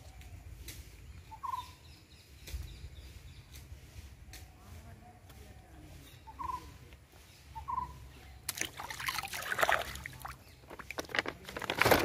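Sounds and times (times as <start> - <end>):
faint high bird chirps: 0.0 - 3.6, 6.0 - 8.5
quavering bird call: 7.6 - 8.1.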